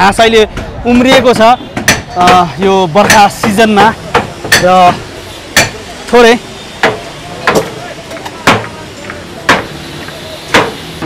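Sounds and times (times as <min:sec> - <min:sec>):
steady background noise: 0:00.0 - 0:11.0
hammer striking formwork: 0:00.6 - 0:05.0, 0:05.6 - 0:05.8, 0:06.8 - 0:09.8, 0:10.5 - 0:10.8.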